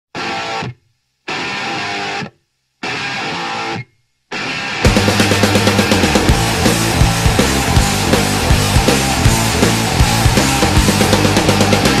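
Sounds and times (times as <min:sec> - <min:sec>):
electric guitar chords: 0:00.2 - 0:12.0.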